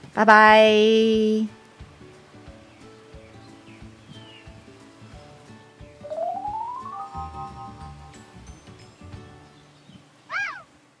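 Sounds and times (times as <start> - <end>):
soft background music: 0.0 - 10.3
cat meowing: 10.3 - 10.7.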